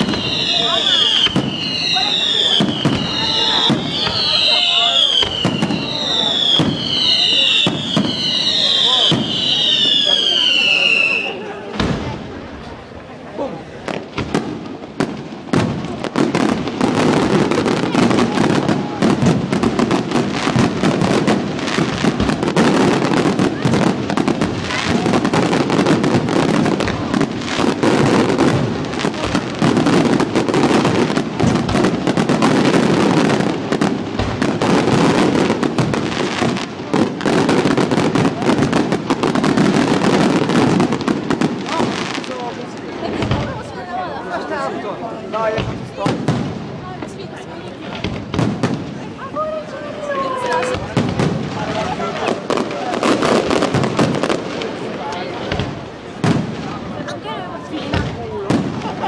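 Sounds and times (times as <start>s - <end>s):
fireworks bangs and crackling: 0.0s - 59.0s.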